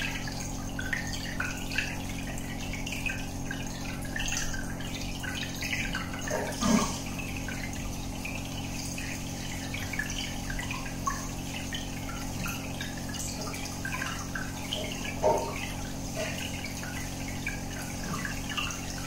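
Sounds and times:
aquarium air bubbles popping: 0.0 - 19.0
water gurgle: 0.0 - 19.0.

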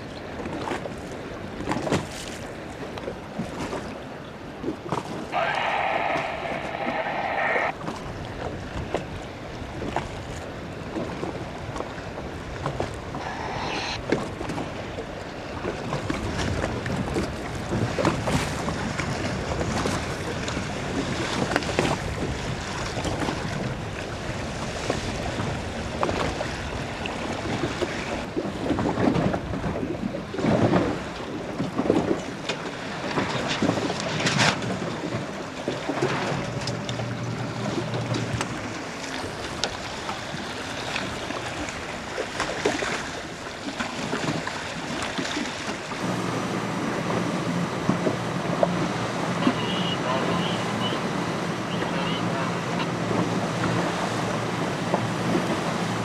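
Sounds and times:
water splashing and slapping: 0.0 - 56.0.

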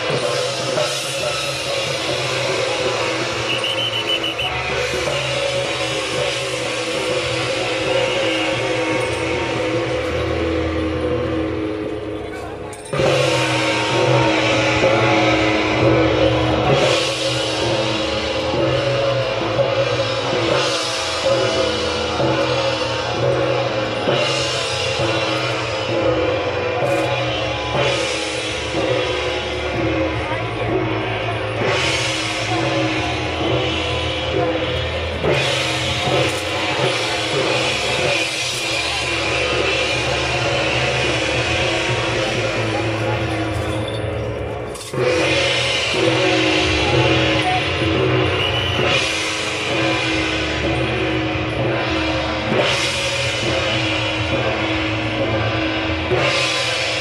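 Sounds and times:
percussion ensemble of gong cymbals and drum: 0.0 - 57.0.

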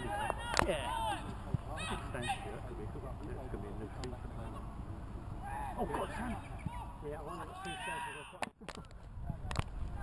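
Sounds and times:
men laughing and chatting: 0.0 - 9.6.

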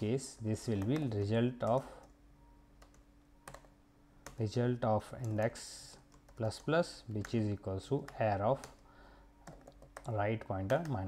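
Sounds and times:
faint steady hum: 0.0 - 11.0
computer keyboard keystrokes: 0.6 - 2.2, 2.8 - 4.5, 5.2 - 7.4, 8.0 - 8.8, 9.4 - 11.0.

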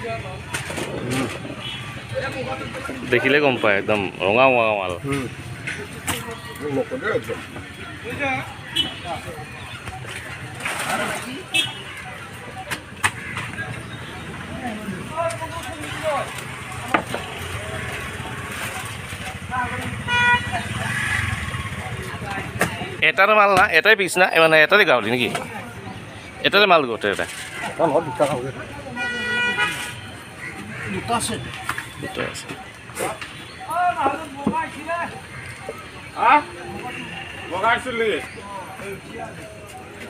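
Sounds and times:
faint voices: 0.0 - 40.0
low traffic rumble: 0.0 - 40.0
people talking: 0.0 - 40.0.

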